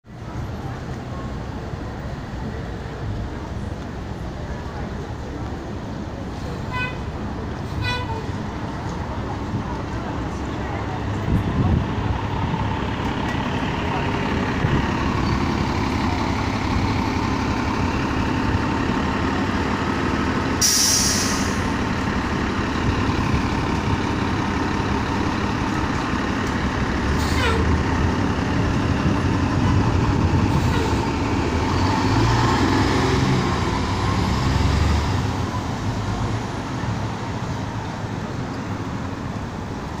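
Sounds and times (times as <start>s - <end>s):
bus diesel engine: 0.0s - 40.0s
street traffic: 0.0s - 40.0s
air brake hiss: 20.6s - 21.7s.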